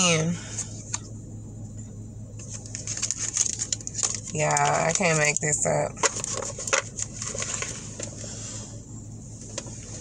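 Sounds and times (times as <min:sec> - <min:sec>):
low steady hum: 0:00.0 - 0:10.0
cards rustling and clicking: 0:02.4 - 0:08.1.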